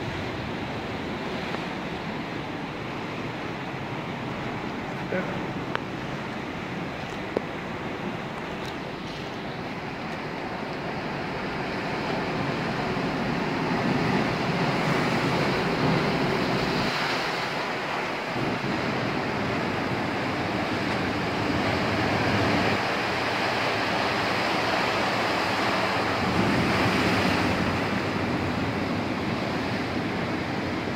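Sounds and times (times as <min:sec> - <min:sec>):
waves breaking on rocky shore: 0:00.0 - 0:30.9.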